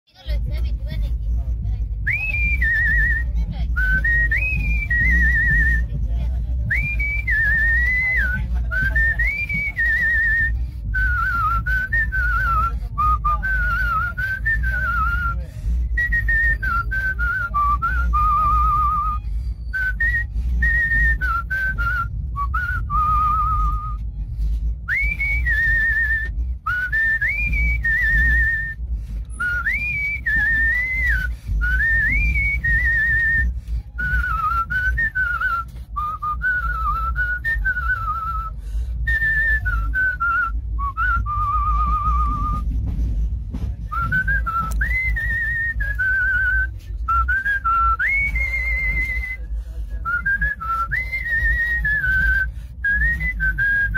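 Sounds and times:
steady low rumble: 0:00.0 - 0:53.9
man whistling a melody: 0:02.0 - 0:06.0, 0:06.7 - 0:24.2, 0:24.8 - 0:42.8, 0:43.8 - 0:53.9.

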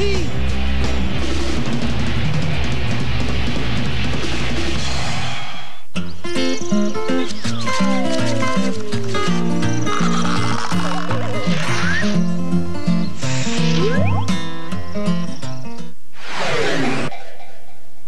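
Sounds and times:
light tune with falling slide: 0:12.9 - 0:14.7, 0:16.4 - 0:18.0.

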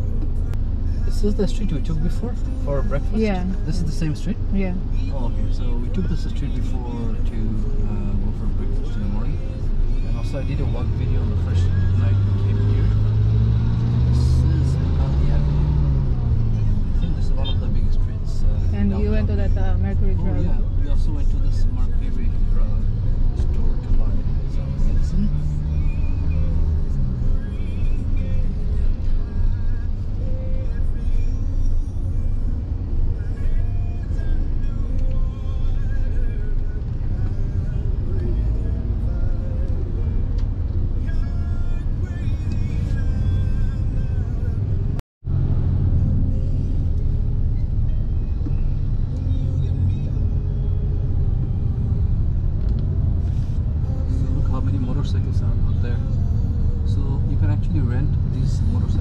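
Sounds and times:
car engine and road rumble: 0:00.0 - 0:59.0
faint music: 0:00.0 - 0:59.0.

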